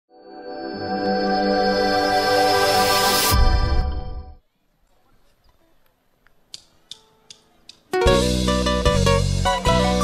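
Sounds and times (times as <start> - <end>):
drumsticks clicking together: 6.2 - 7.9
live band with guitars and drums: 7.9 - 10.0.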